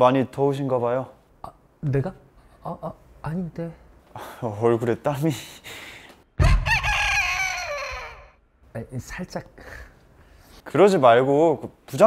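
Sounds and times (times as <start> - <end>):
rooster crowing: 6.4 - 8.4.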